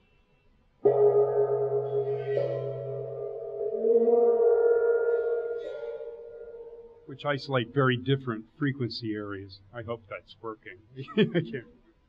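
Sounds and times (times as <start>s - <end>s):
hand gong ringing: 0.8s - 7.8s.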